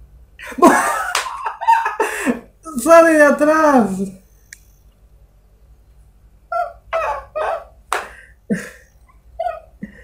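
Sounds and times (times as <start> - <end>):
man laughing in breathy bursts: 0.4 - 2.6, 7.0 - 10.0.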